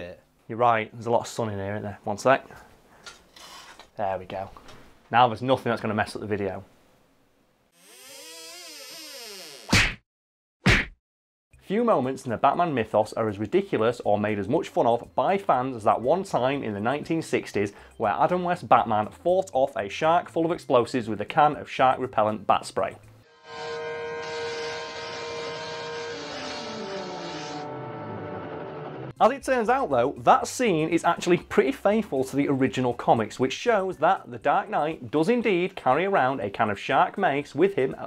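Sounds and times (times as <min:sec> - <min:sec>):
synthesized swell rising and falling: 0:23.3 - 0:29.1
film soundtrack chords: 0:23.3 - 0:29.2.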